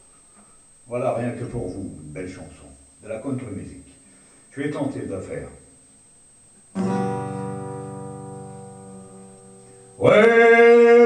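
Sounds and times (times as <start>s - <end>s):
acoustic guitar chord ringing: 6.7s - 11.0s.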